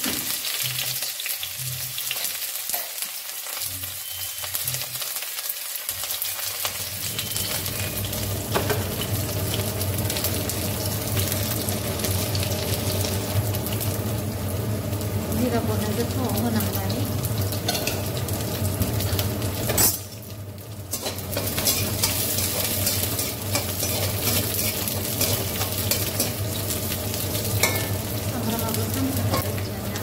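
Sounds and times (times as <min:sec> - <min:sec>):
onions sizzling in hot oil: 0:00.0 - 0:30.0
spatula scraping pan: 0:20.9 - 0:26.4.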